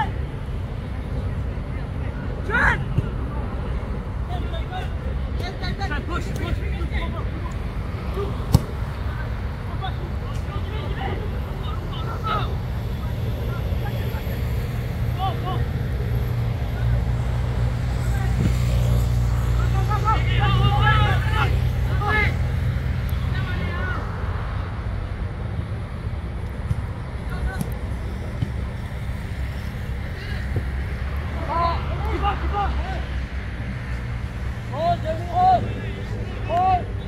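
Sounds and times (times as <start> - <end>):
football players shouting: 2.4 - 14.4, 15.0 - 18.7, 19.4 - 24.2, 30.0 - 33.4, 34.6 - 37.0.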